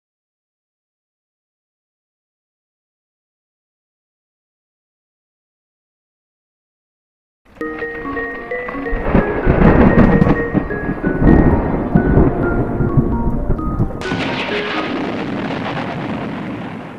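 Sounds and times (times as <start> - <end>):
chiming mallet melody: 7.6 - 15.3
heavy rolling thunder: 8.9 - 16.9.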